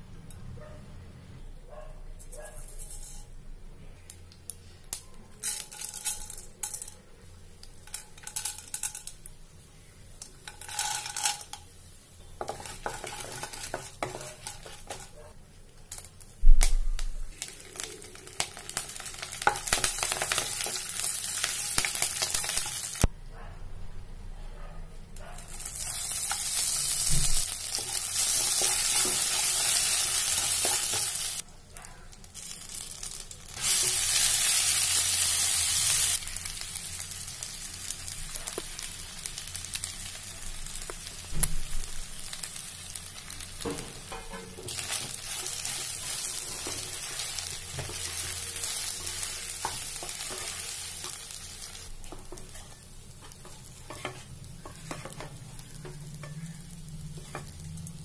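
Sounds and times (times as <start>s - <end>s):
spatula scraping and tapping pan: 2.5s - 3.3s, 10.2s - 11.6s, 12.4s - 15.2s, 27.7s - 31.3s, 43.6s - 48.4s, 52.0s - 57.7s
hot oil sizzling: 4.1s - 23.1s, 25.4s - 31.5s, 32.1s - 58.0s.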